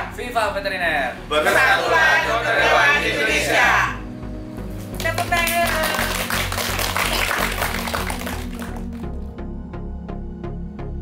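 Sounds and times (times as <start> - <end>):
music with steady beat: 3.1 - 11.0
people clapping and cheering: 4.9 - 9.2.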